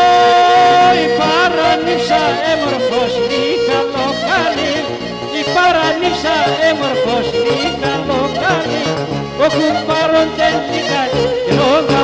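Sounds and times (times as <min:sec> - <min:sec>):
bowed lyra folk melody with drone: 0:00.0 - 0:12.0.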